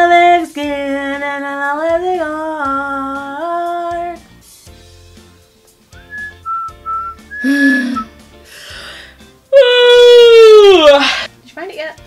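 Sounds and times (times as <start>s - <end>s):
faint background music: 0.0s - 12.0s
woman whistling: 6.1s - 8.1s.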